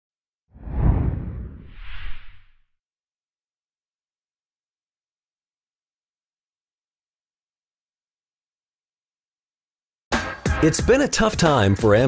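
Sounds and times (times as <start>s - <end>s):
deep bass whoosh: 0.6s - 2.5s.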